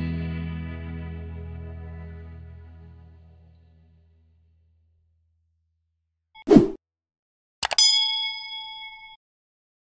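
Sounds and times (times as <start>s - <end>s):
bright bell ding: 7.6s - 9.2s.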